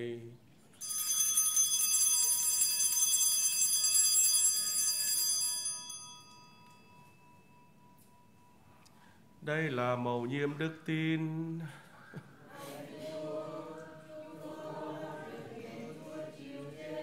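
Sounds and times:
altar bells ringing: 0.8 - 9.4.

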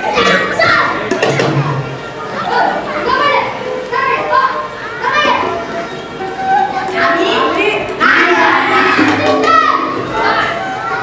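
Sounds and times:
children talking and calling out: 0.0 - 11.0.

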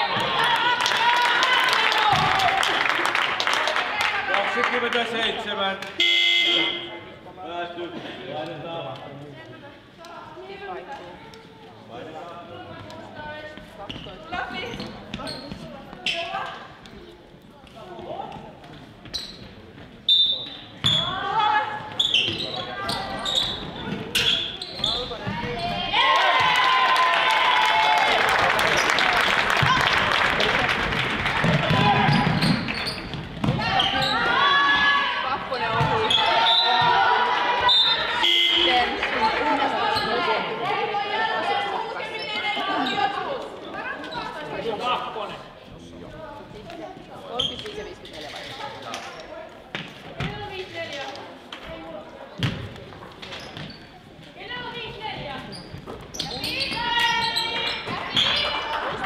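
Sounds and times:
crowd shouting and cheering: 0.0 - 7.0, 25.2 - 44.1, 56.3 - 59.0
people calling out: 33.6 - 44.1.

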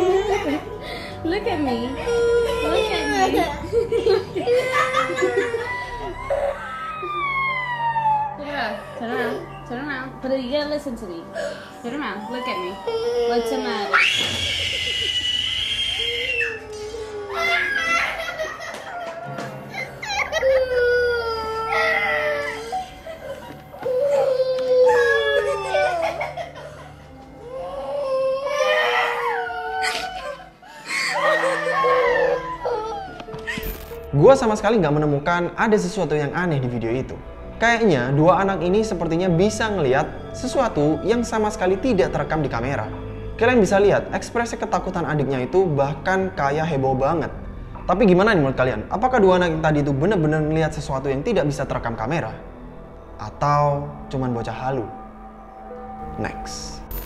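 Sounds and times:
background music: 0.0 - 57.0
girl wailing in fright: 1.9 - 3.6, 4.4 - 9.6, 12.0 - 26.6, 27.4 - 34.0.

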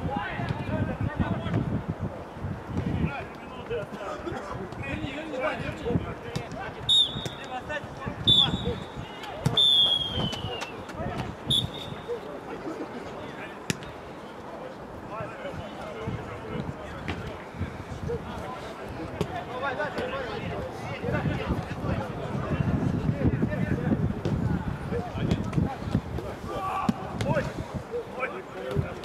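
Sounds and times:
referee's whistle blasts: 6.9 - 7.5, 8.3 - 10.7, 11.5 - 12.1
ball being kicked: 9.4 - 10.4
players shouting: 26.2 - 27.5.

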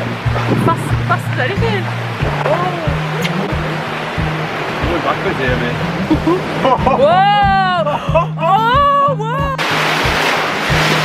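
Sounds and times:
background music with beat and bass: 0.0 - 11.0
rushing white water: 0.0 - 11.0.

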